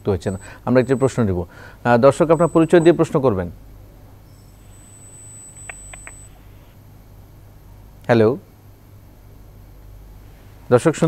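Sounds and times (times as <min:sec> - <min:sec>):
thin high whine: 0:00.0 - 0:07.8
telephone line hum: 0:00.0 - 0:08.1
short beeps: 0:00.3 - 0:03.2, 0:04.3 - 0:06.4.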